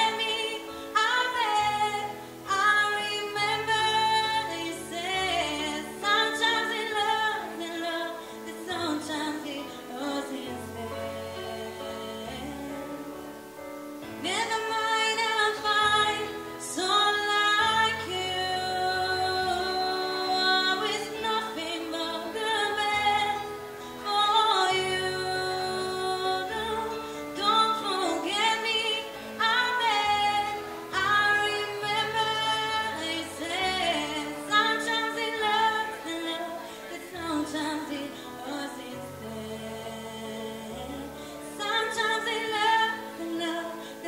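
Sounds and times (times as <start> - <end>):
woman singing: 0.0 - 44.0.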